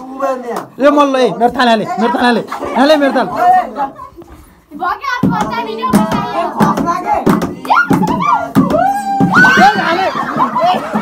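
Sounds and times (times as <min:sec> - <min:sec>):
rhythmic hand clapping: 0:05.2 - 0:08.9.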